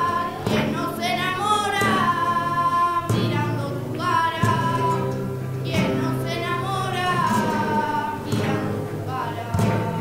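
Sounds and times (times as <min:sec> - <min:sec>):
flamenco guitar: 0:00.0 - 0:10.0
girl singing: 0:00.0 - 0:10.0.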